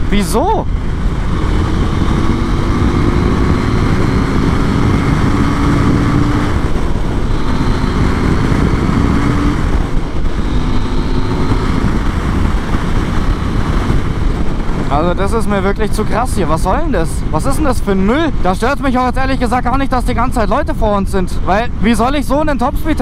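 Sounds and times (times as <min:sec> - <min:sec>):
motorcycle engine running: 0:00.0 - 0:19.8
wind rush on microphone: 0:00.0 - 0:23.0.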